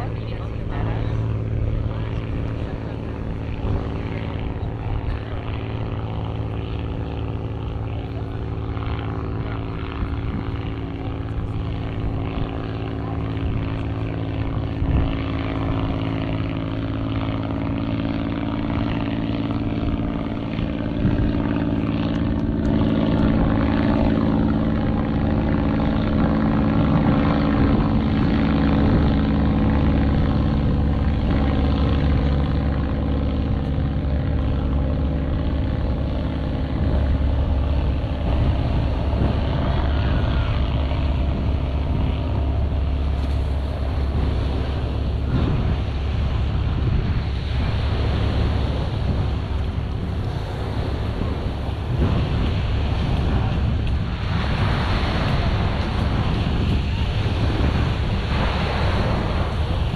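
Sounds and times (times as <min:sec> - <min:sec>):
propeller airplane engine droning: 0:00.0 - 0:59.9
surf: 0:00.0 - 0:59.9
wind: 0:00.0 - 0:59.9.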